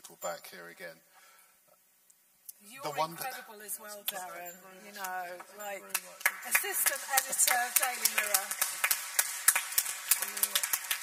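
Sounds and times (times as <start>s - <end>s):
people clapping: 4.0s - 11.0s.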